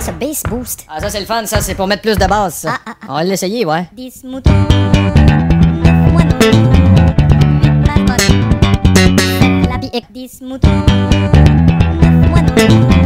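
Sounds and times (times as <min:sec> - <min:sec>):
electric bass guitar playing: 0:04.5 - 0:10.0, 0:10.7 - 0:13.0.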